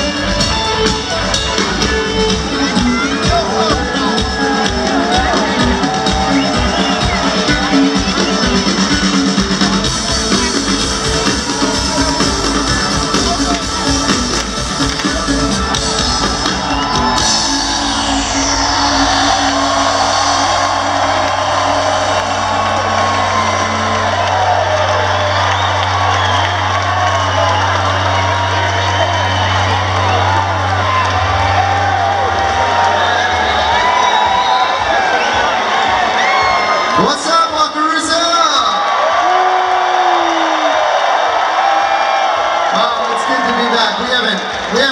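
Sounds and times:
live band music: 0.0 - 38.4
crowd cheering and whistling: 0.0 - 44.9
low bass note ringing: 17.3 - 24.2.

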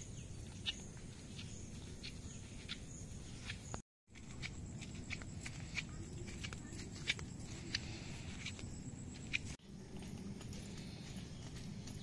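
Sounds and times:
footsteps on dirt path: 0.0 - 12.0
low outdoor rumble: 4.1 - 12.0.

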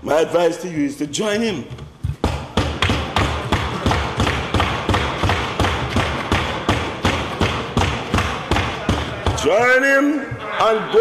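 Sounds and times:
people thumping desks: 1.6 - 11.0.

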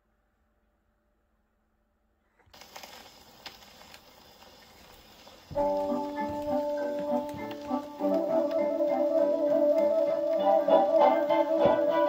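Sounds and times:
record surface noise hiss and crackle: 2.2 - 12.0
record needle clicks: 2.5 - 12.0.

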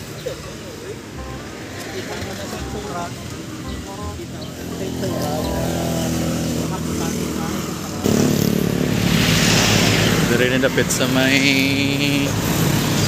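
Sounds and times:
vehicle engine running: 0.0 - 13.0
vehicle passing by: 1.2 - 13.0.

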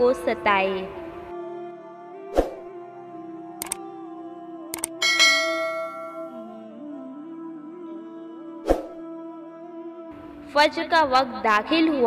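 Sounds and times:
soft background music: 0.0 - 12.0
bell ding: 5.0 - 6.4.

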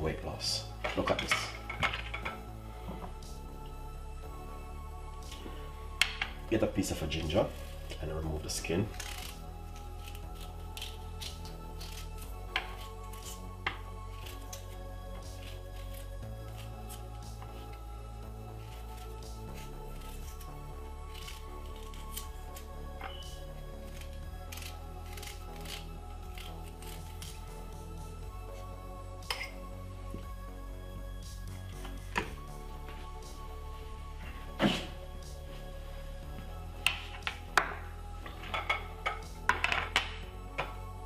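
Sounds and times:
background music with bass: 0.0 - 41.0
knife peeling ginger: 8.8 - 17.9, 18.5 - 27.8.

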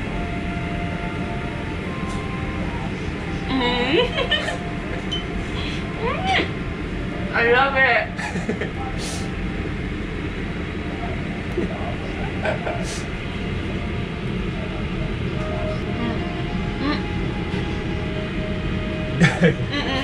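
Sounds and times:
low steady rumble: 0.0 - 20.0
faint background voices: 8.2 - 9.4, 10.9 - 13.2.

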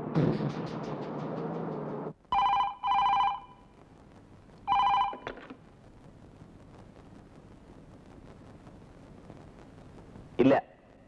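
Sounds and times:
telephone ringing: 2.3 - 3.7, 4.6 - 5.6.

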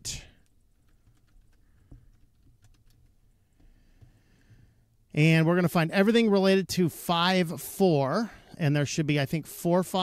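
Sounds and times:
computer keyboard keystrokes: 0.8 - 3.2.

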